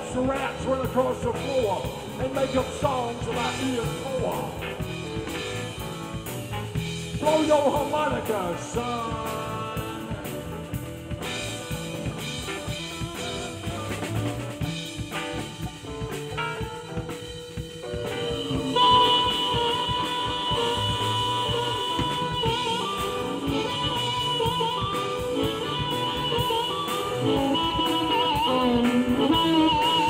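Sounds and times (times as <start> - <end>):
live band playing: 0.0 - 30.0
harmonica solo: 8.6 - 30.0.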